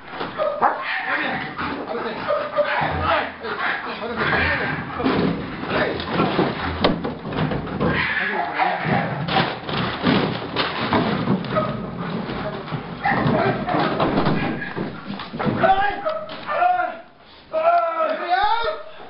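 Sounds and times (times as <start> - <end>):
dog scuffling: 0.0 - 16.7
men shouting: 0.4 - 6.0, 7.9 - 9.4, 13.0 - 19.0
sacks and boxes knocked about: 4.4 - 8.0, 8.8 - 16.5.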